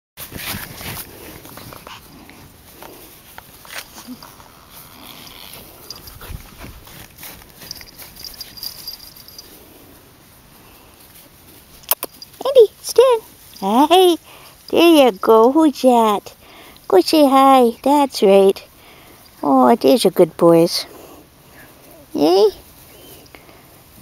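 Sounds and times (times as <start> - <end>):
puppies playing: 0.5 - 12.4.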